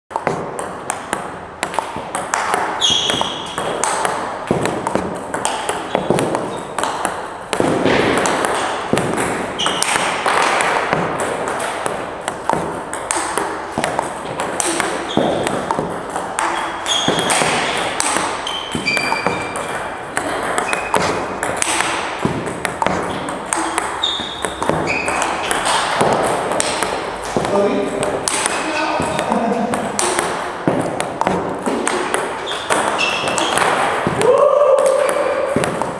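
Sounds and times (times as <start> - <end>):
table tennis balls clicking: 0.1 - 35.9
short high squeaks: 2.8 - 3.6, 16.5 - 17.8, 18.4 - 19.6, 24.0 - 25.6, 32.4 - 33.6.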